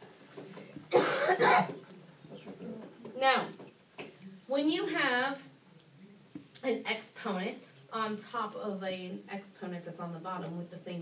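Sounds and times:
person coughing: 0:00.9 - 0:01.7.

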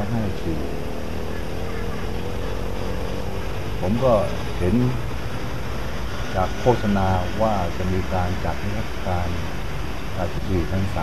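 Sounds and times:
faint steady hum: 0:00.0 - 0:11.0
traffic engine drone: 0:00.0 - 0:11.0.

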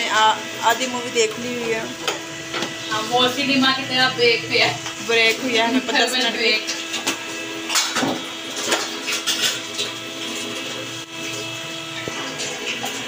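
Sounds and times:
steady hum: 0:00.0 - 0:08.8
oil sizzling around fries: 0:00.0 - 0:13.0.

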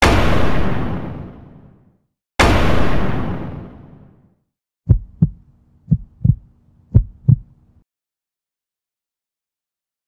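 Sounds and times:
boom: 0:00.0 - 0:04.3
heartbeat thumps: 0:04.9 - 0:07.6.

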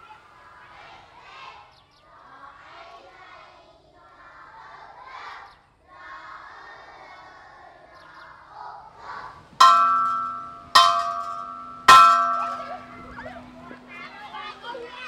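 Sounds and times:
steel rim bell ringing: 0:09.6 - 0:14.4.

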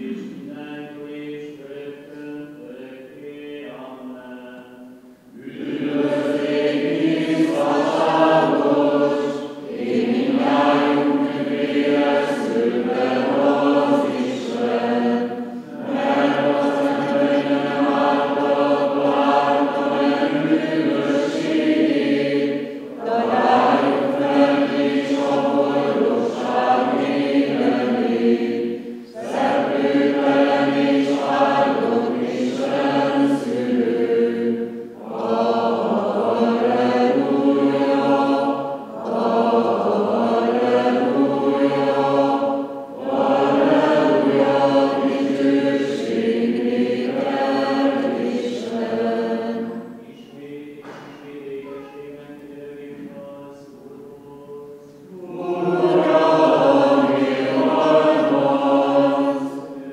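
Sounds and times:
group singing a chant: 0:00.0 - 0:59.9.

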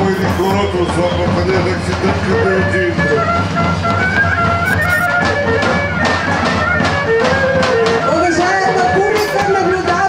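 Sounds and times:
bagpipe melody over drone: 0:03.1 - 0:08.0
percussive strikes: 0:03.6 - 0:08.0.

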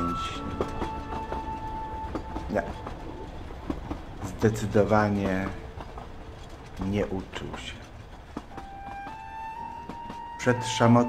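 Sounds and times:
train low rumble: 0:00.0 - 0:11.0
wheels clacking over rail joints: 0:00.0 - 0:11.0.

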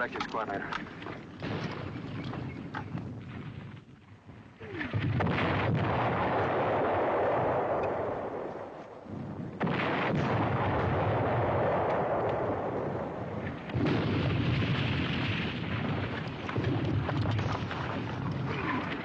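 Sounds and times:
shell explosions: 0:00.0 - 0:19.0
explosion rumble: 0:04.6 - 0:19.0.

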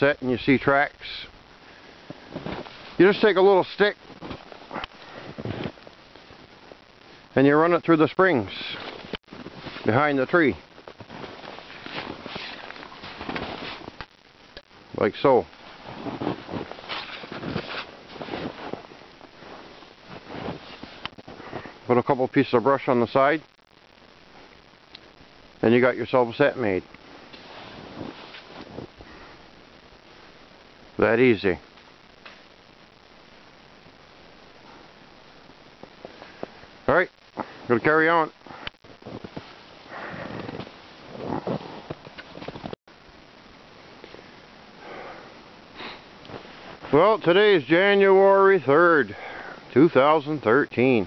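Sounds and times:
rustling of brush: 0:01.7 - 0:05.8, 0:08.4 - 0:14.1, 0:15.6 - 0:21.8, 0:26.6 - 0:29.4, 0:39.0 - 0:42.8, 0:45.8 - 0:47.2
footsteps crunching in snow: 0:02.0 - 0:05.8, 0:08.6 - 0:14.0, 0:15.6 - 0:21.8, 0:27.3 - 0:29.1, 0:39.0 - 0:42.8, 0:46.3 - 0:47.2.

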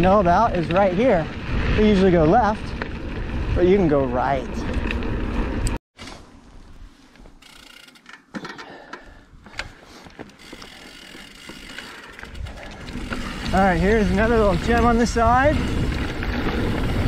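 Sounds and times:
bike tyres on dirt: 0:00.0 - 0:17.0
low wind rumble on microphone: 0:00.2 - 0:05.8, 0:12.3 - 0:17.0
bicycle freewheel ticking: 0:07.4 - 0:08.1, 0:10.4 - 0:16.0.

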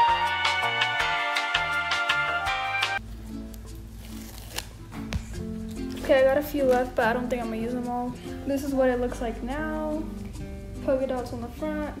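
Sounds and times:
background music with sustained notes: 0:00.0 - 0:12.0.

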